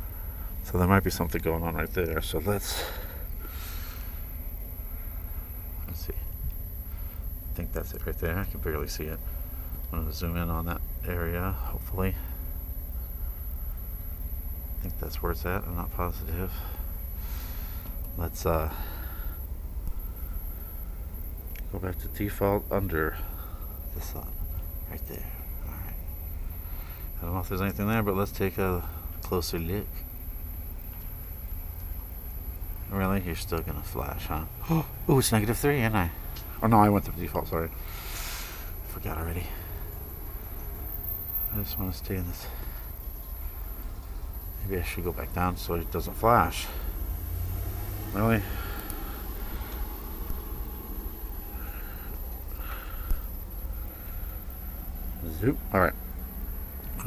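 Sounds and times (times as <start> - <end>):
faint hiss: 0.0 - 57.0
low unsteady rumble: 0.0 - 57.0.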